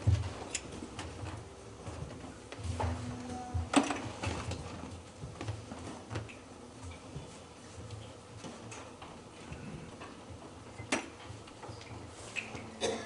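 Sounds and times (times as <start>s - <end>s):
low room hum: 0.0s - 13.0s
faint steady low tone: 2.8s - 3.8s.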